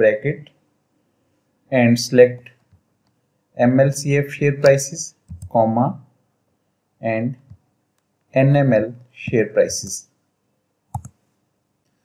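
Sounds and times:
computer mouse clicking: 4.6s - 5.6s, 10.9s - 11.2s.

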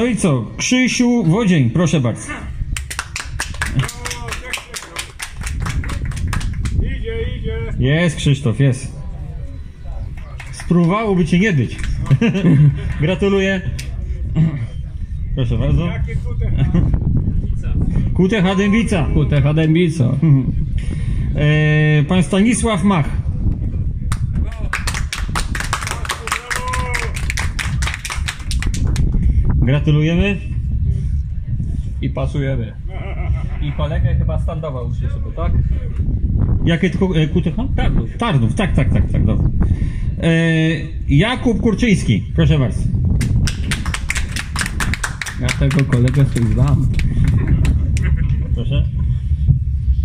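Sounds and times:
small group applauding: 2.7s - 6.8s, 10.1s - 11.0s, 24.1s - 29.1s, 43.2s - 48.1s.

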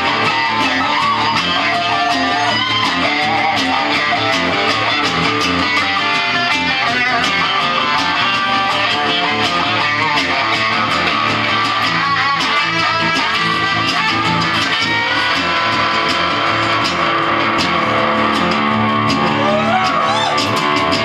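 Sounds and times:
electric guitar lead line: 0.0s - 21.0s
strummed acoustic guitar: 0.0s - 21.0s.

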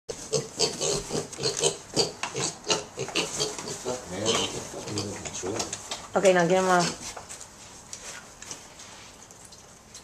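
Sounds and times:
pigs grunting: 0.2s - 5.8s.

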